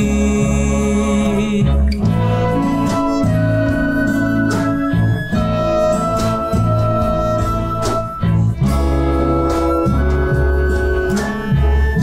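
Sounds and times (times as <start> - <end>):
steady bass line: 0.0 - 12.0
string orchestra chords: 0.0 - 12.0.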